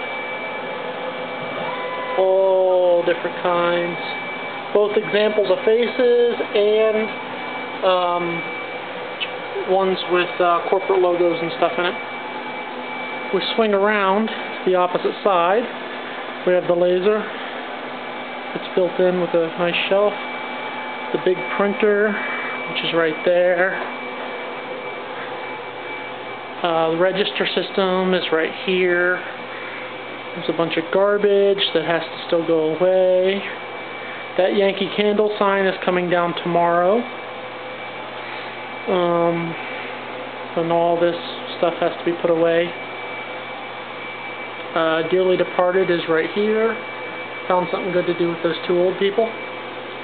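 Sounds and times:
faint high whine: 0.0 - 50.0.

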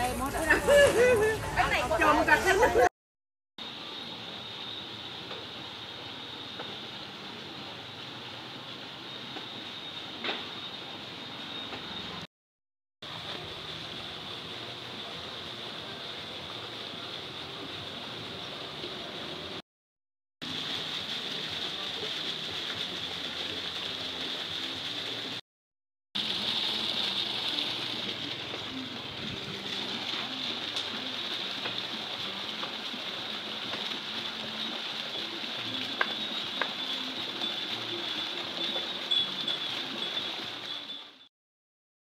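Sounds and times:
water running in canal: 0.0 - 2.9, 3.6 - 12.3, 13.0 - 19.6, 20.4 - 25.4, 26.2 - 41.3.

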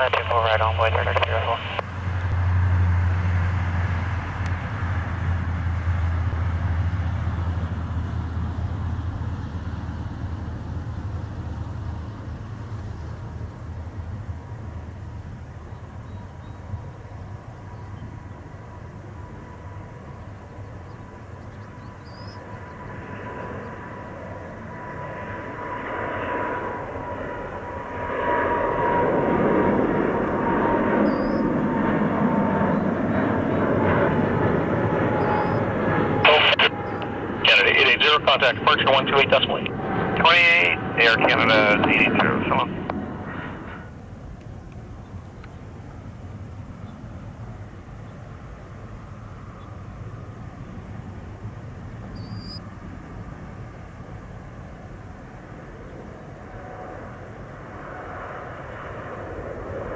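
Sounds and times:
jet engines roaring: 0.0 - 59.9
steady engine whine: 0.0 - 59.9.

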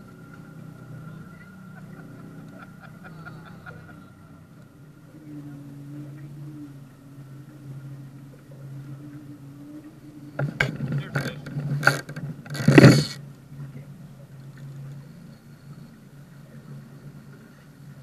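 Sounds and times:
outboard motor humming: 0.0 - 18.0.

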